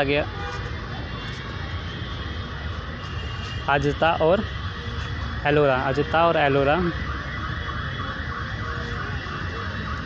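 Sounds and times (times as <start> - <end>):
electronic siren wailing: 0.0 - 10.0.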